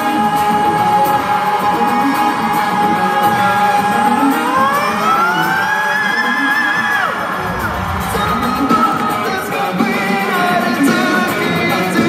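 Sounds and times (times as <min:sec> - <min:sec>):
fans cheering: 0:00.0 - 0:11.5
rock band playing live: 0:00.0 - 0:12.0.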